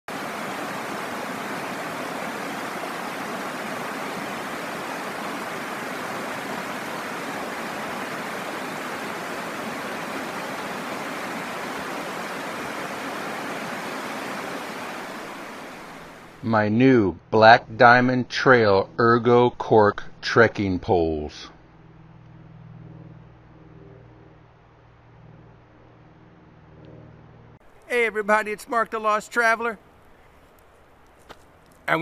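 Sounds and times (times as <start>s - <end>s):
creek water running over rocks: 0.1s - 16.4s.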